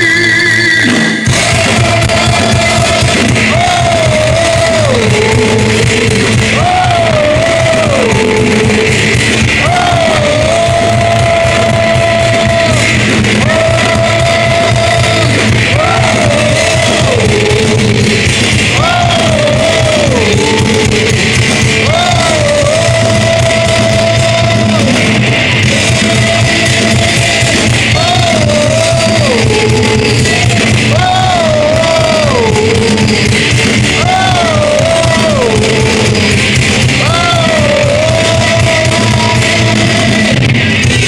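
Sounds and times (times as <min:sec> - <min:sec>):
person singing: 0:00.0 - 0:40.6
heavy metal band playing: 0:00.0 - 0:41.0.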